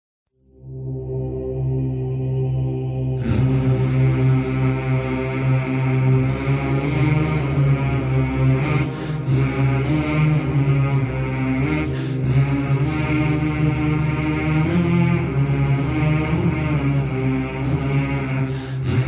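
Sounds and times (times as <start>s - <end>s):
chant-like vocal drone: 0.5s - 19.0s.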